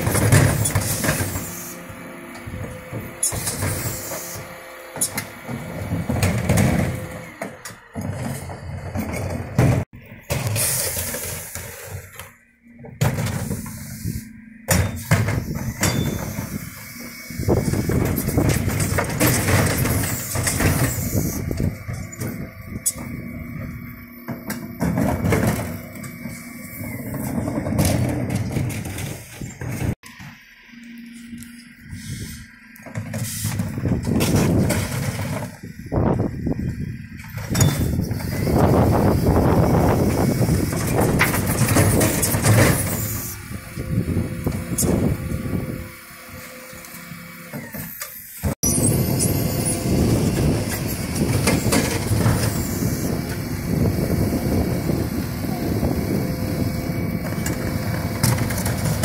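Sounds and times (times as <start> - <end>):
lorry hydraulics humming and whining: 0.0 - 59.0
plastic bins knocking and clattering: 5.5 - 10.5.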